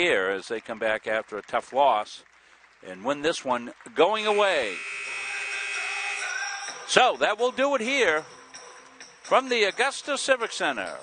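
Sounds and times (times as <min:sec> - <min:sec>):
arena game horn blast: 0:04.2 - 0:06.6.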